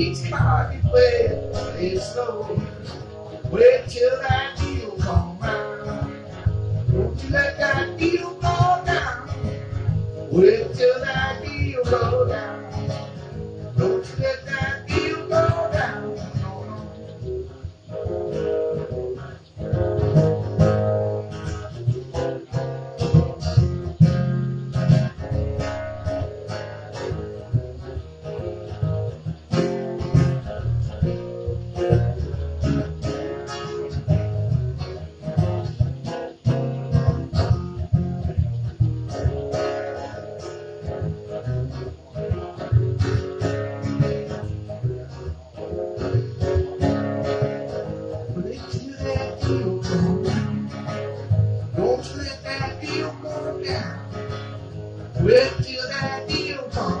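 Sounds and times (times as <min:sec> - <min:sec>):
acoustic guitars picking and strumming: 0:00.0 - 0:57.0.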